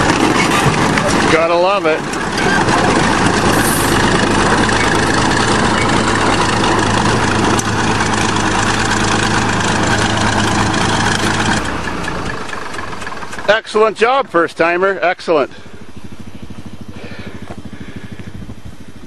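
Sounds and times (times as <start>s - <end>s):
bulldozer diesel engine running: 0.0s - 19.0s.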